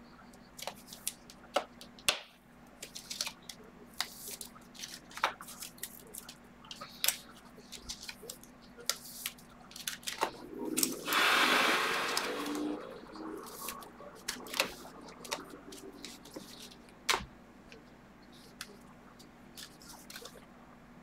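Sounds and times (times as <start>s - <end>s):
cards rustling: 2.8s - 11.0s, 12.2s - 17.2s, 18.4s - 20.5s.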